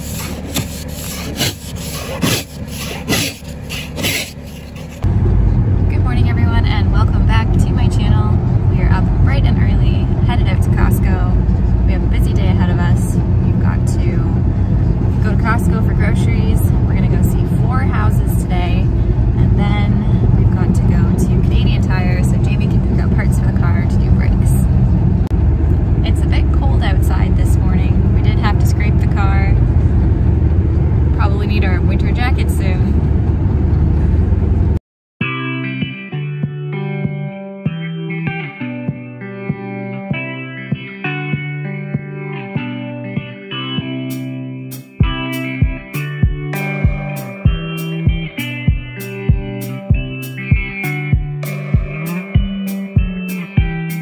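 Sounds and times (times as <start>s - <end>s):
road and engine rumble in car: 0.0s - 34.8s.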